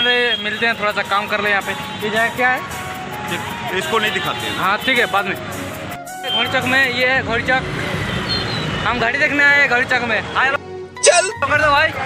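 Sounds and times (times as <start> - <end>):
road traffic: 0.0 - 12.0
background music: 0.8 - 7.4, 10.6 - 12.0
person speaking: 11.0 - 11.4.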